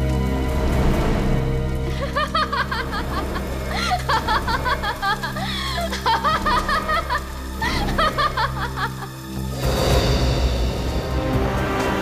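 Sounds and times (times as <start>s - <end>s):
low music drone: 0.0s - 12.0s
woman laughing: 1.9s - 9.3s.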